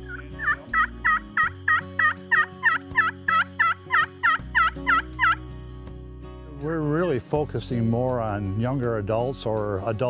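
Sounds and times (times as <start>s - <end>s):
turkey call yelps: 0.1s - 5.4s.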